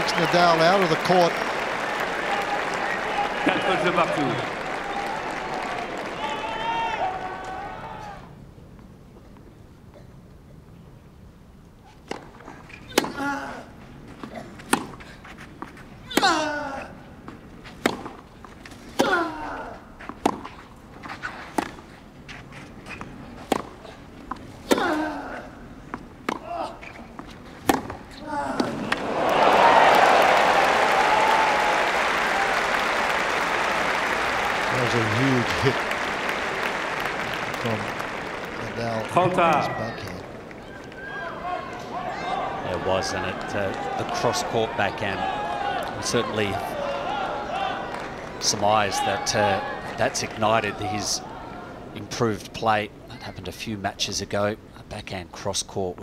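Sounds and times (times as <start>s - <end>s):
crowd applauding and cheering: 0.0s - 8.2s, 28.9s - 51.0s
racket hitting tennis ball: 12.9s - 13.2s, 14.6s - 15.1s, 17.7s - 19.4s, 20.1s - 20.6s, 23.4s - 25.2s, 25.9s - 29.0s.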